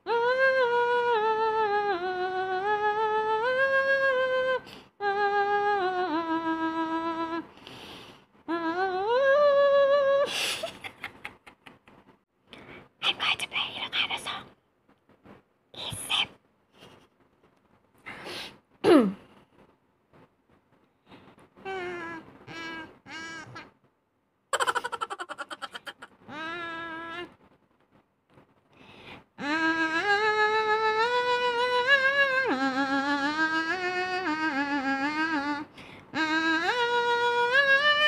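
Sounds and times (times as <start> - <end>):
woman laughing: 10.3 - 11.9, 24.6 - 26.2
woman humming through nose: 21.6 - 23.7, 26.3 - 27.3, 29.4 - 38.0
woman playing notes through her nose: 21.6 - 23.7.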